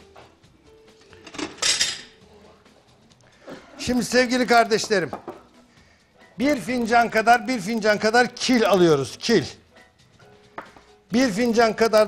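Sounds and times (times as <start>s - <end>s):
tableware clattering: 1.1s - 2.2s.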